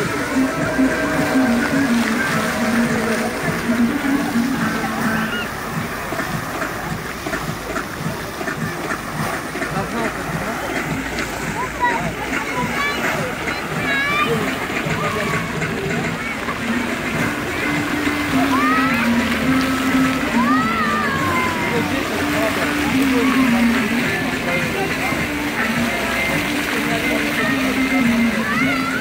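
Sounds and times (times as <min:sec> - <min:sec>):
fountain water splashing: 0:00.0 - 0:29.0
music from loudspeakers: 0:00.0 - 0:29.0.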